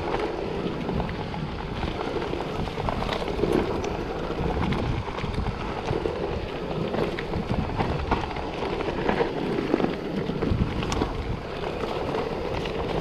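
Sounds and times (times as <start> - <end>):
bike tyres rumbling on dirt: 0.0 - 13.0
wind noise on microphone: 0.0 - 13.0.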